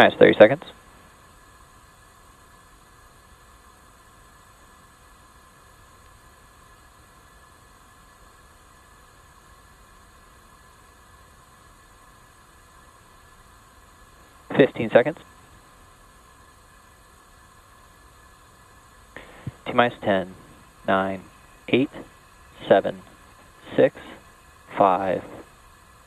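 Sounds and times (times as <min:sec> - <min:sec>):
faint steady hiss: 0:00.0 - 0:26.0.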